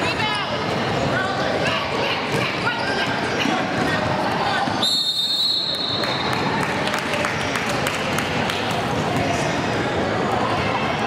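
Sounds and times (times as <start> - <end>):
voices of players and onlookers: 0.0 - 11.0.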